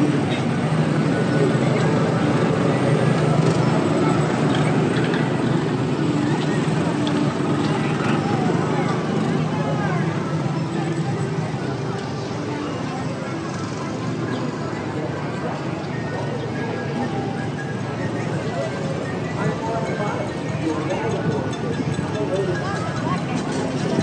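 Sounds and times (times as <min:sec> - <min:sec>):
people's voices: 0:00.0 - 0:24.0
small gasoline engines running: 0:00.0 - 0:24.0.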